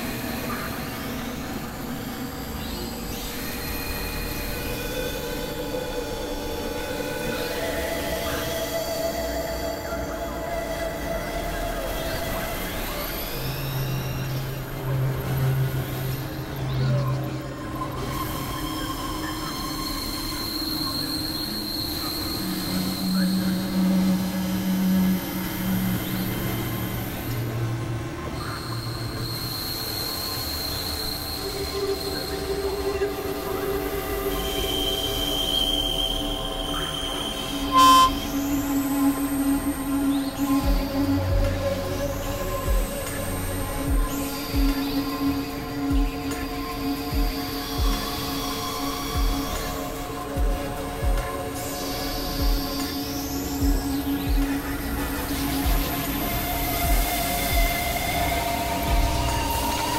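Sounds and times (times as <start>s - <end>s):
experimental electronic music: 10.8s - 59.9s.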